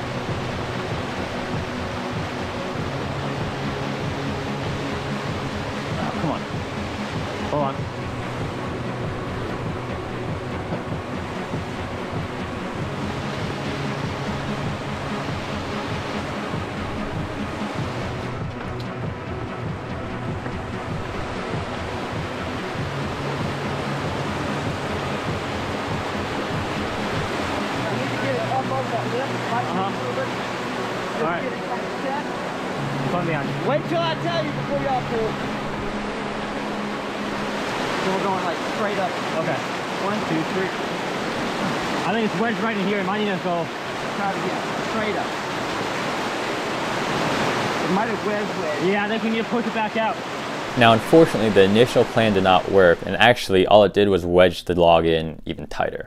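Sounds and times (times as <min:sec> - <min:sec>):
whitewater rushing over rocks: 0:00.0 - 0:18.8, 0:20.0 - 0:53.2.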